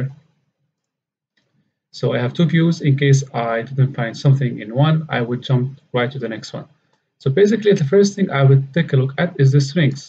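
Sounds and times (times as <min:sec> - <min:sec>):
person speaking: 0:02.0 - 0:06.6, 0:07.2 - 0:10.0.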